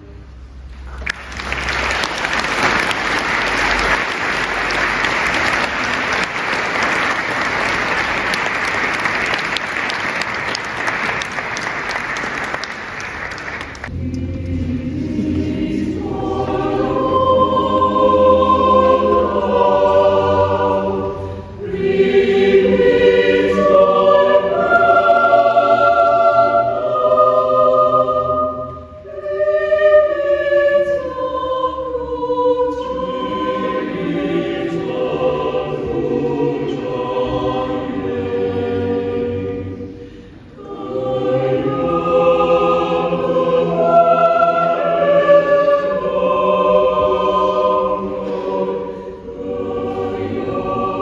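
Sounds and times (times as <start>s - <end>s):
choir singing: 1.4s - 51.0s.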